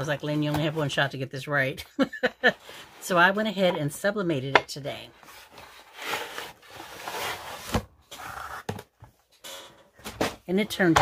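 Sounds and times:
wood and glass scraping cardboard: 0:05.2 - 0:08.8.

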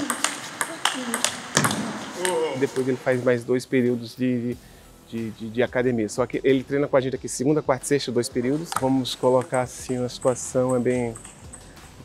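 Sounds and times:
ping-pong ball ticks: 0:00.0 - 0:02.9, 0:08.6 - 0:11.9.

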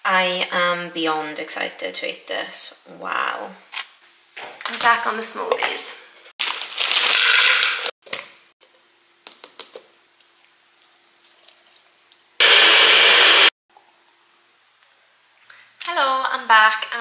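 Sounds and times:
blender running: 0:06.9 - 0:07.9, 0:12.4 - 0:13.6.

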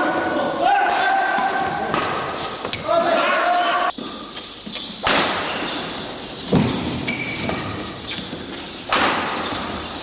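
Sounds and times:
racket hitting shuttlecock: 0:00.8 - 0:02.4, 0:08.9 - 0:09.8
shoes squeaking on court floor: 0:01.4 - 0:03.1, 0:03.7 - 0:10.0.

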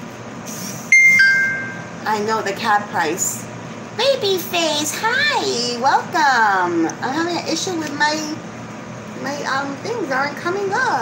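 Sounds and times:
phone notification chime: 0:00.9 - 0:01.9.

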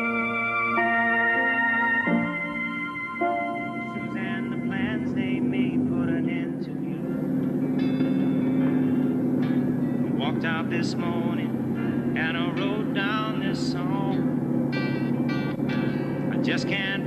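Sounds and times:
car engine droning: 0:00.0 - 0:17.0
music: 0:00.0 - 0:17.0.

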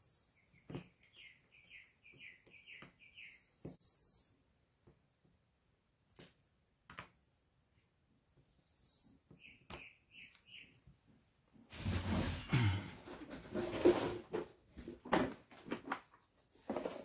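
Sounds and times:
scraping and rustling: 0:11.7 - 0:17.0.

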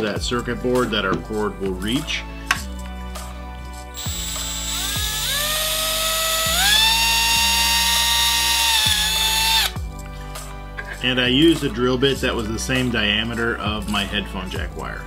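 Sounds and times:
background music: 0:00.0 - 0:15.0
cordless drill motor whine: 0:04.0 - 0:09.8.

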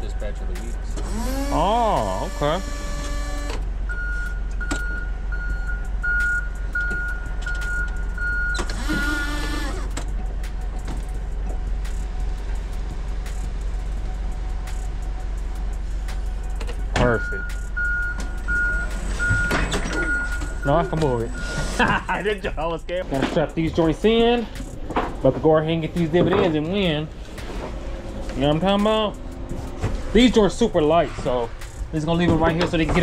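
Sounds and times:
low engine rumble: 0:00.0 - 0:33.0
forklift warning alarm beeps: 0:02.0 - 0:09.3, 0:17.1 - 0:21.8.

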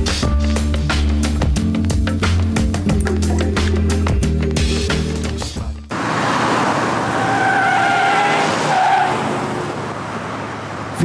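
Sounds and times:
car tyres screeching: 0:05.9 - 0:11.0.

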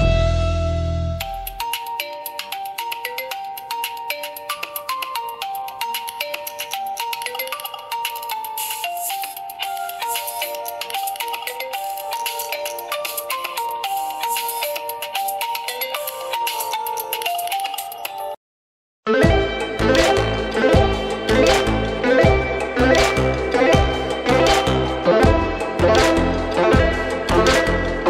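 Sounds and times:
smartphone ringtone melody: 0:01.2 - 0:18.4.

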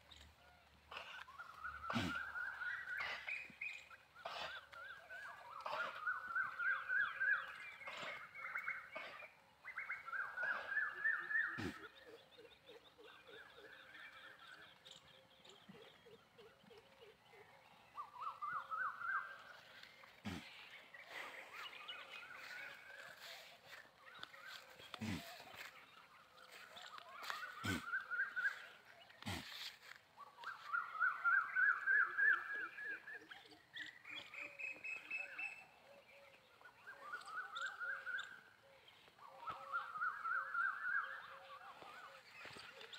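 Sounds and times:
rapid pulsed animal calls: 0:00.9 - 0:33.5.

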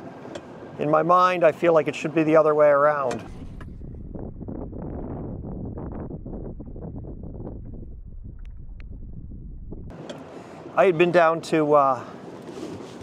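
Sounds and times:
wind buffeting microphone: 0:03.2 - 0:10.0.

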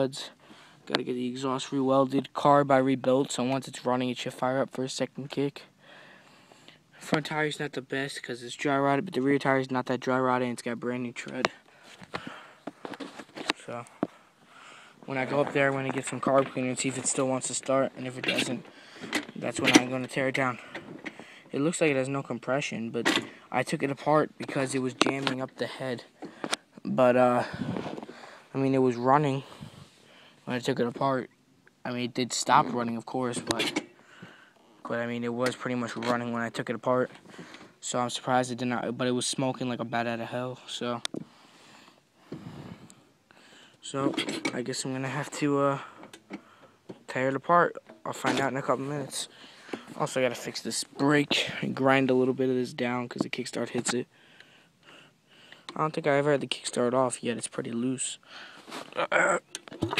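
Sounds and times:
camera handling rustling: 0:12.0 - 0:14.2.

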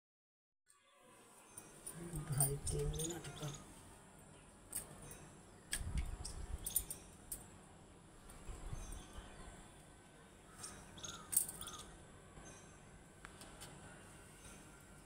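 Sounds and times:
faint outdoor background: 0:00.7 - 0:15.0
bangles clinking: 0:01.5 - 0:03.6, 0:06.2 - 0:07.6, 0:10.6 - 0:11.9.

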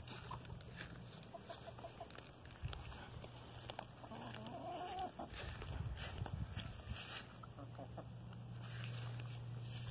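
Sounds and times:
hens clucking: 0:00.0 - 0:09.9
steady low hum: 0:00.0 - 0:09.9.

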